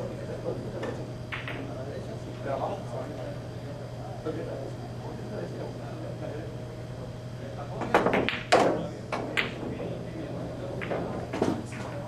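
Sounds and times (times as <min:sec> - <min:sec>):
pool balls clicking: 0:00.8 - 0:01.7, 0:07.8 - 0:12.0
cue striking ball: 0:01.3 - 0:01.7, 0:07.9 - 0:10.0, 0:10.8 - 0:12.0.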